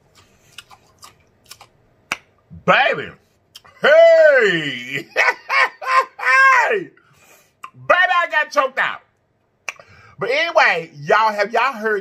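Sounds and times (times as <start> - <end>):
man laughing: 3.7 - 6.9.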